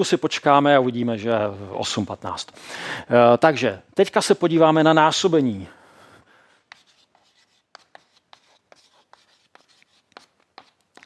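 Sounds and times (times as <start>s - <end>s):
chalk tapping and scratching: 6.6s - 11.0s.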